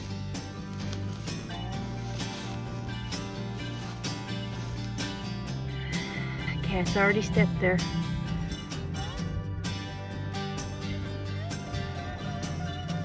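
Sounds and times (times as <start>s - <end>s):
country music with guitar and bass: 0.0s - 13.0s.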